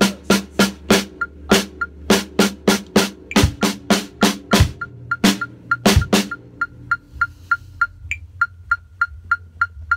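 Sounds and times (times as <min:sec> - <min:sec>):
metronome clicks: 0:00.8 - 0:09.9.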